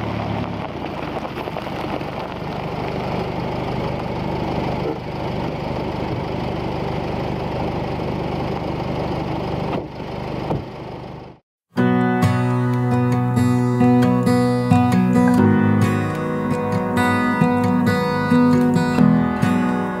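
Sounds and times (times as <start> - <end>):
engine running: 0.0 - 11.4, 12.2 - 20.0.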